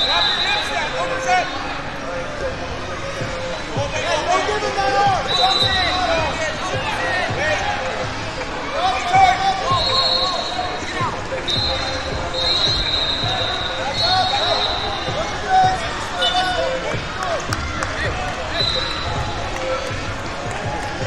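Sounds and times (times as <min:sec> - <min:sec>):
high whistle tone: 0:00.0 - 0:00.9, 0:05.2 - 0:06.4, 0:09.7 - 0:15.3, 0:18.5 - 0:19.3.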